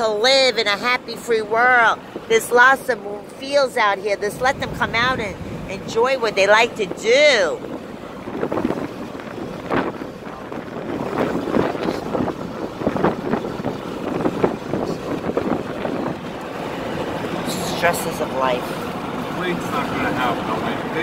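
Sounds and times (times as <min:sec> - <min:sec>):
car road noise: 0:00.0 - 0:21.0
wind buffeting microphone: 0:00.0 - 0:21.0.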